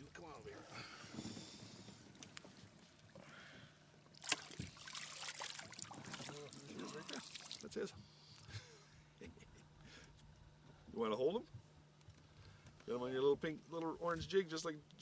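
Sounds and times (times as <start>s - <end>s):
water splashing and sloshing: 4.1s - 7.9s.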